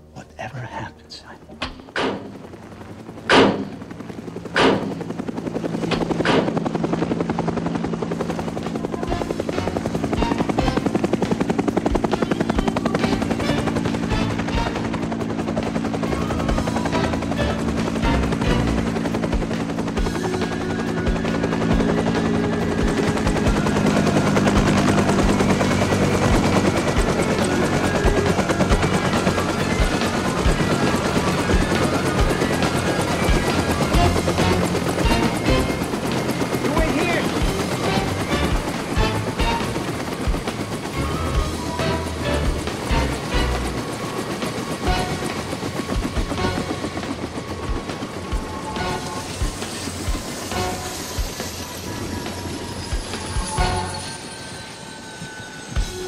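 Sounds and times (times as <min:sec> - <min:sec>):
helicopter rotor chopping: 0:00.0 - 0:56.0
sharp bangs: 0:03.2 - 0:03.8, 0:04.5 - 0:05.0.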